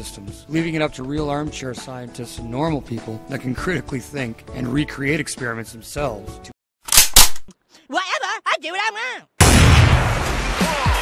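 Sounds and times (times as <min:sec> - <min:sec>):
high-pitched voice speaking: 0:07.9 - 0:09.3.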